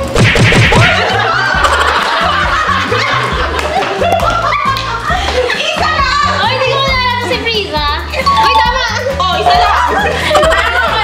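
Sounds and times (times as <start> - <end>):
background music with bass line: 0.0 - 11.0
people laughing and snickering: 0.7 - 6.6, 8.9 - 11.0.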